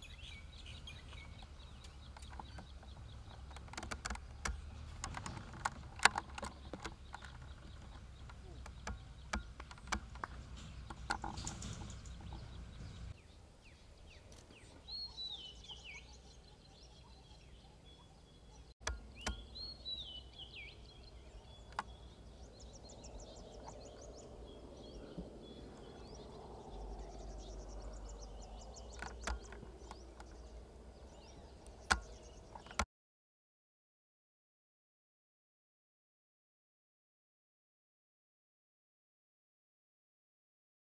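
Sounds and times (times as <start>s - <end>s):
low steady rumble: 0.0s - 16.2s
sharp clicks: 1.1s - 12.8s, 18.8s - 19.6s, 28.8s - 30.4s, 31.6s - 32.9s.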